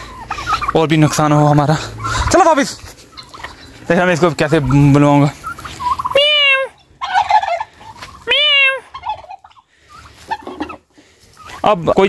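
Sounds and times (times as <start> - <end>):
turkeys calling: 0.0 - 12.0.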